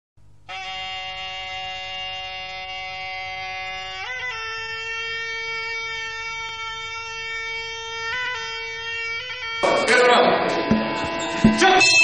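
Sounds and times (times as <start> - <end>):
reed pipe long nasal note: 0.5 - 12.0.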